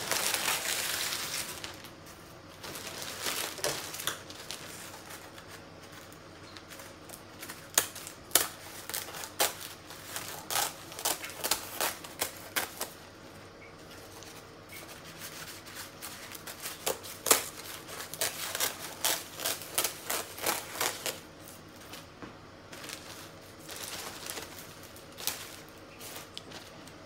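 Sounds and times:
dried leaves crackling and snapping: 0:00.0 - 0:13.2, 0:15.2 - 0:27.0.

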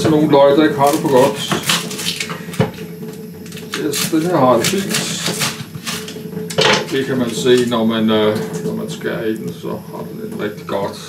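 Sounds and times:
knife cutting on wooden board: 0:00.9 - 0:07.7.

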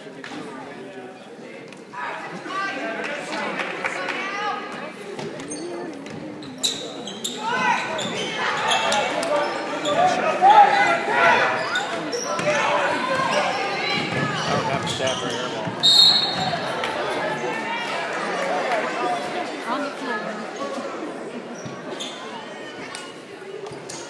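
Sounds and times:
voices shouting and echoing: 0:01.9 - 0:23.8.

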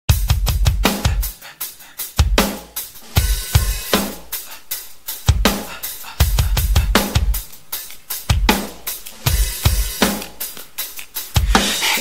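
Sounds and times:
drum kit hits: 0:00.1 - 0:01.4, 0:02.2 - 0:07.5, 0:08.2 - 0:10.5
rock song: 0:00.1 - 0:12.0
cymbal crashes: 0:02.4 - 0:04.4.

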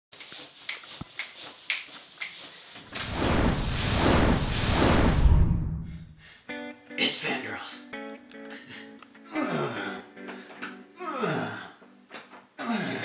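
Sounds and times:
rushing whoosh with deep rumble: 0:03.0 - 0:06.2.

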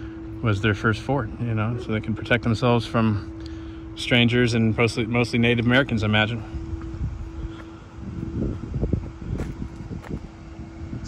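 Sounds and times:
faint steady hum: 0:00.0 - 0:11.0
wind buffeting microphone: 0:06.5 - 0:11.0.

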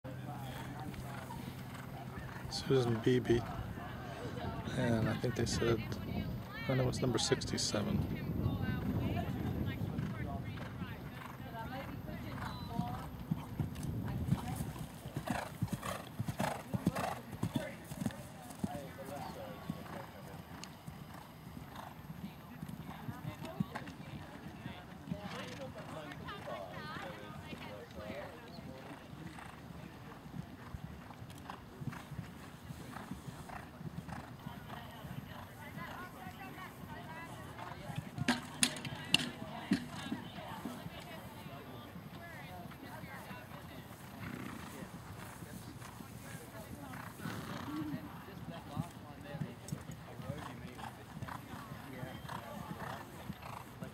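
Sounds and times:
faint voices: 0:00.0 - 0:53.9
horse hooves cantering: 0:00.2 - 0:53.9
horse hooves thudding: 0:35.8 - 0:41.4.

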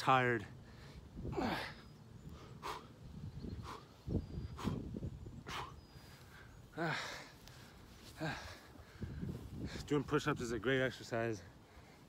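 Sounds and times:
man breathing hard: 0:00.6 - 0:09.9
man straining ah: 0:01.2 - 0:03.0, 0:08.1 - 0:09.0.

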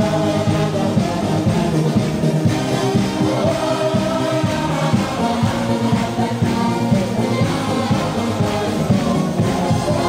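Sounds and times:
crowd of men singing: 0:00.0 - 0:10.0.

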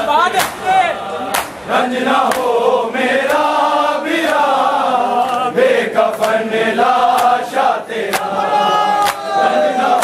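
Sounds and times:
men chanting in unison: 0:00.0 - 0:10.0
hands slapping bare chests: 0:00.4 - 0:00.6, 0:01.3 - 0:01.6, 0:07.1 - 0:07.4, 0:08.1 - 0:08.4, 0:09.0 - 0:09.3.

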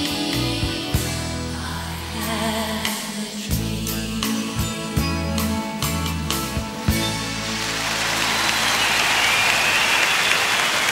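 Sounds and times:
audience applauding and cheering: 0:07.0 - 0:10.9
long high whistle: 0:08.1 - 0:10.9.

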